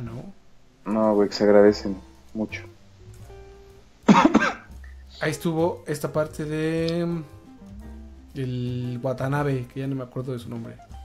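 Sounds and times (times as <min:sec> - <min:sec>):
faint background music: 0:00.0 - 0:11.0
man coughing: 0:04.1 - 0:04.7.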